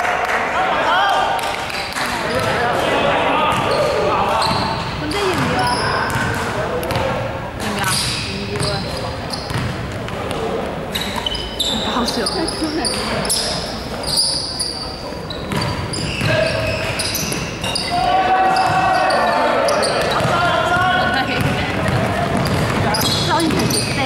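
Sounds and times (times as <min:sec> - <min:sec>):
players calling out: 0:00.5 - 0:09.7, 0:10.4 - 0:24.0
sneakers squeaking on floor: 0:01.4 - 0:02.8, 0:03.4 - 0:24.0
basketball bouncing: 0:04.4 - 0:10.4, 0:15.5 - 0:17.7, 0:20.0 - 0:24.0.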